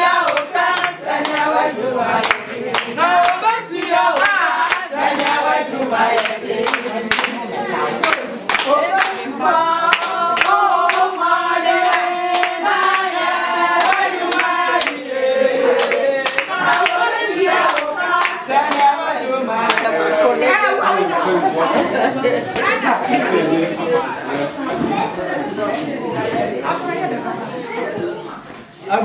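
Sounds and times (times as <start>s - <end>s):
rhythmic hand clapping: 0.0s - 20.7s
women singing unaccompanied: 0.0s - 23.3s.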